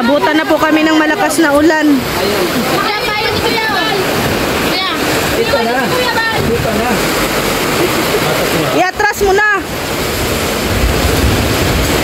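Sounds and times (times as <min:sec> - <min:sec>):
people talking: 0:00.0 - 0:07.1, 0:07.7 - 0:09.7
heavy rain pouring: 0:00.0 - 0:12.0.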